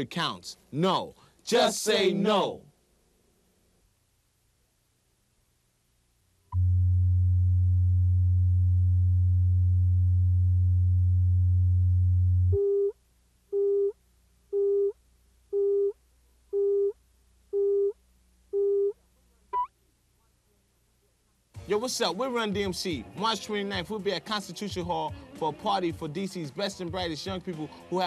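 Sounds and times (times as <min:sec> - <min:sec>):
steady low line-up tone: 0:06.5 - 0:12.9.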